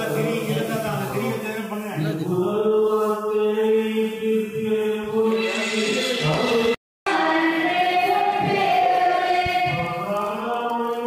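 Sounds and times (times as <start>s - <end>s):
chanting in long held notes: 2.2s - 11.0s.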